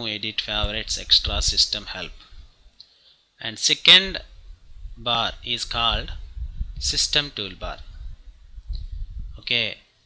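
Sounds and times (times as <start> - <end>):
man speaking: 0.0 - 2.3, 3.4 - 4.3, 5.0 - 6.2, 6.8 - 7.9, 9.4 - 9.8
low steady background hum: 0.0 - 10.0.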